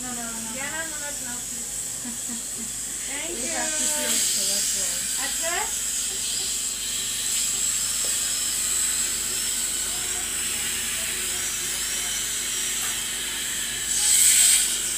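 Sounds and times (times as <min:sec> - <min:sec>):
dental drill whine: 0:00.0 - 0:14.9.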